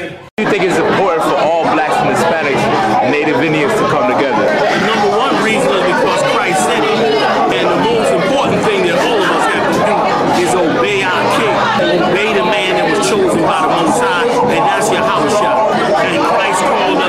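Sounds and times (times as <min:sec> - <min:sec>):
overlapping chatter: 0:00.0 - 0:17.0.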